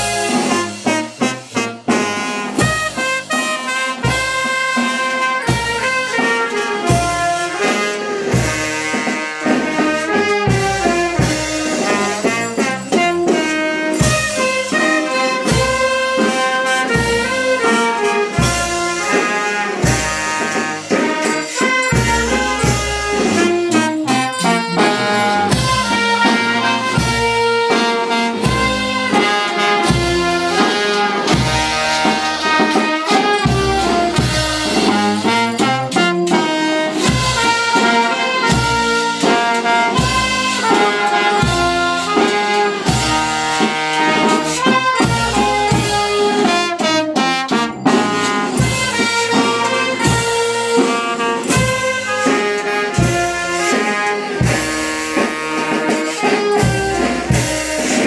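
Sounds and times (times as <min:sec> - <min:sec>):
brass band playing dance tune: 0:00.0 - 0:58.0.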